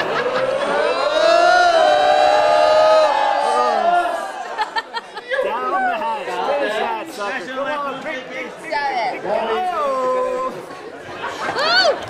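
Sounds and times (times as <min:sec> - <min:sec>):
voices holding a long shout: 0:00.0 - 0:04.6.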